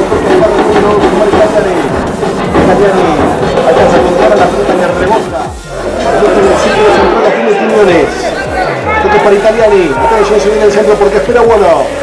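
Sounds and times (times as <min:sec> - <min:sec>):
football commentator speaking: 0:00.0 - 0:11.9.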